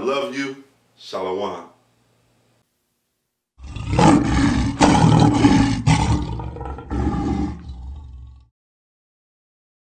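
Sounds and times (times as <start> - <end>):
lion roaring: 3.6 - 8.5.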